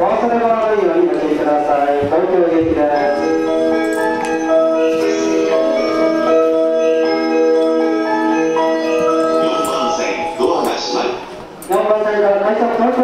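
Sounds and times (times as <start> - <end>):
chime melody over speakers: 2.9 - 11.5.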